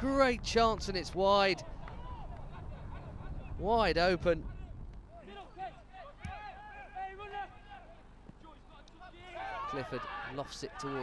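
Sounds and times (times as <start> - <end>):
players shouting: 5.1 - 11.0.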